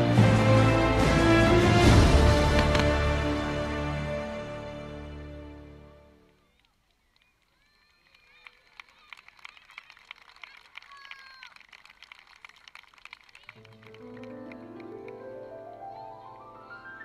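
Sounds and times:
music with rising run of notes: 0:00.0 - 0:06.1
audience clapping: 0:01.5 - 0:03.4, 0:06.3 - 0:15.5.

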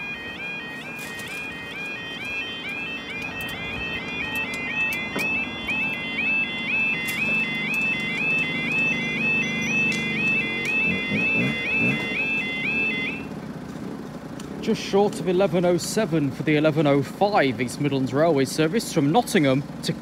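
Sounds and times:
level crossing alarm warbling: 0:00.0 - 0:13.3.

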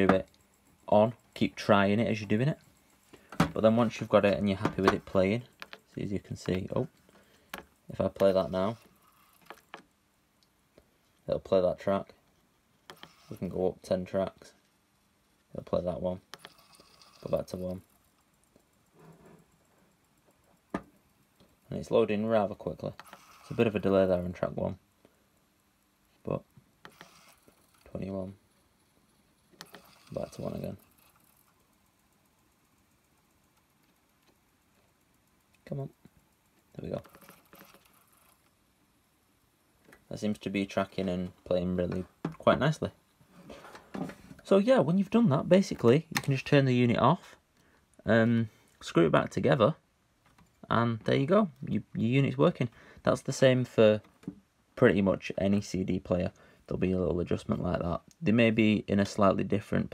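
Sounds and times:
disc player mechanism whirring: 0:00.0 - 0:11.0, 0:12.8 - 0:14.4, 0:15.4 - 0:46.5.

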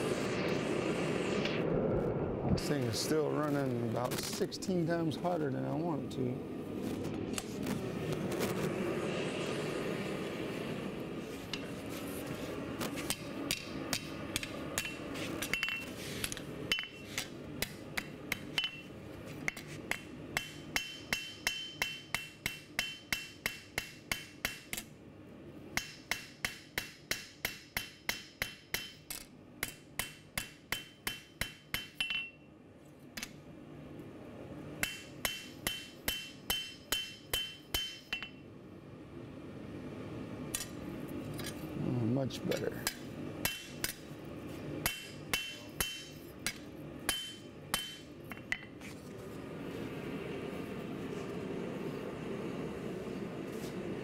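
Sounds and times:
gas forge burner rushing: 0:00.0 - 0:24.6, 0:40.4 - 0:54.0
hammer striking metal on anvil: 0:13.1 - 0:18.9, 0:19.5 - 0:24.9, 0:25.8 - 0:32.4, 0:34.8 - 0:38.4, 0:42.5 - 0:44.1, 0:44.8 - 0:48.8.

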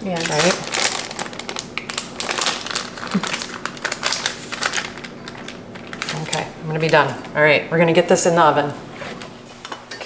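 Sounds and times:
parchment paper crinkling: 0:00.1 - 0:07.2.

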